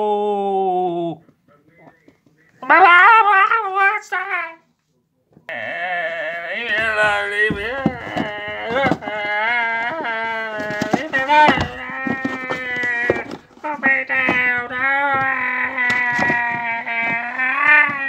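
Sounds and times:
person wailing: 5.5 - 18.0.

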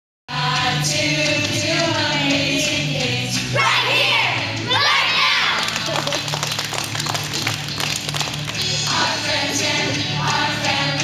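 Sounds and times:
praise song music: 0.3 - 11.0
children singing and shouting: 2.3 - 5.6
hand claps: 5.5 - 9.0.

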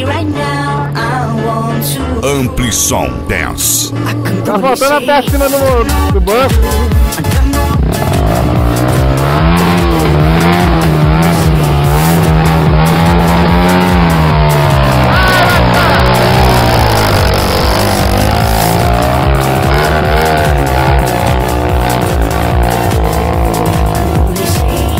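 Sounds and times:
background music with beat: 0.0 - 24.9
dirt bike engine revving: 5.8 - 24.9.

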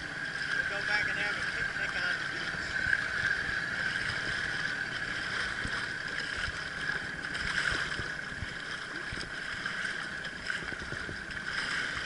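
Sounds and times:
steady high hum: 0.0 - 12.0
water lapping against hull: 0.0 - 12.0.

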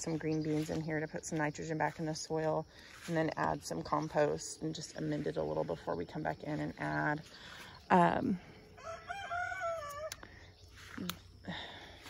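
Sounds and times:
rooster crowing: 8.8 - 10.2.

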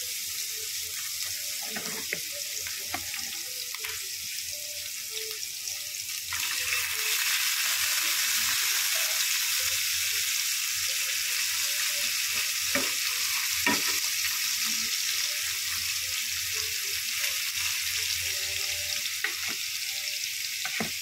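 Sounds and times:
oil sizzling in frying pan: 0.0 - 21.0.

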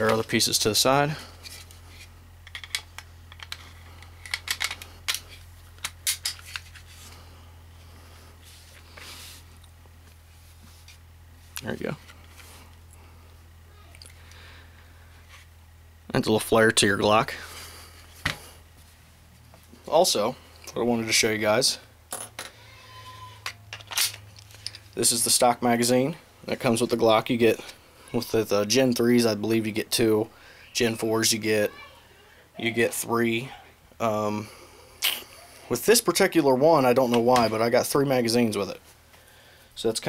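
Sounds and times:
pistol parts clicking: 2.4 - 6.6.

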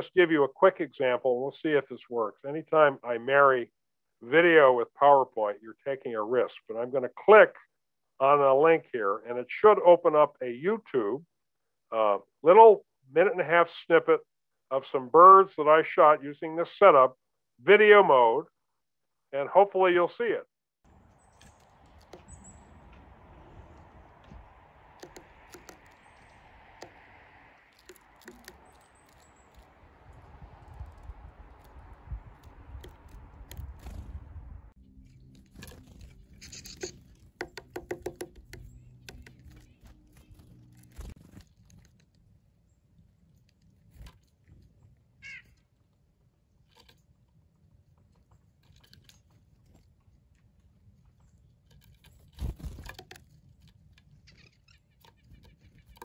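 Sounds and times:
birds pecking taps: 21.4 - 23.0, 24.3 - 29.7, 32.3 - 34.0, 36.4 - 40.0, 52.4 - 56.0.

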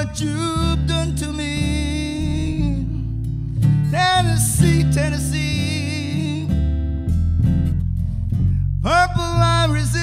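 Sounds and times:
acoustic guitar strumming: 0.0 - 10.0
low bass notes: 0.0 - 10.0.

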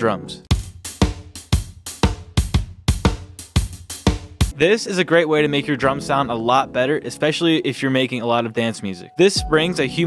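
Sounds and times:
kick drum: 0.5 - 4.5
snare and hi-hat hits: 0.5 - 4.6.

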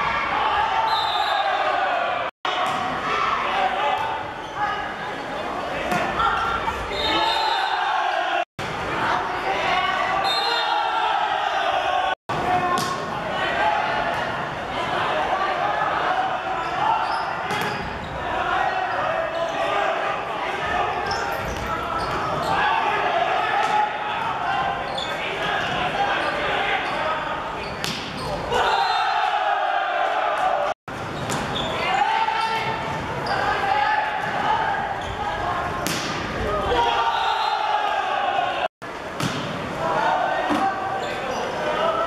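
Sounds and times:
players shouting: 0.0 - 30.8, 31.5 - 38.7, 39.6 - 42.0.

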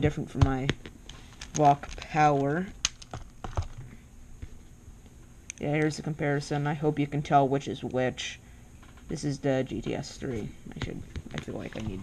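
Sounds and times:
plastic puzzle pieces clicking: 1.4 - 3.8.

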